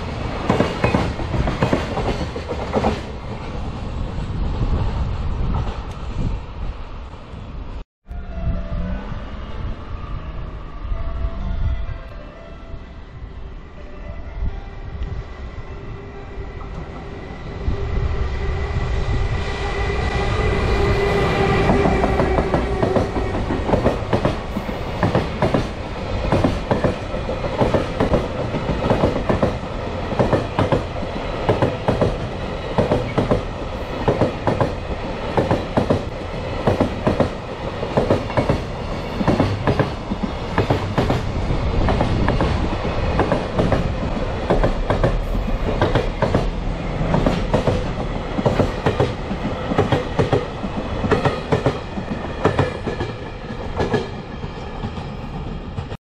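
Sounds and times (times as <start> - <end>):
low rumble of train: 0.0 - 56.0
train wheels clacking over rail joints: 21.7 - 29.6.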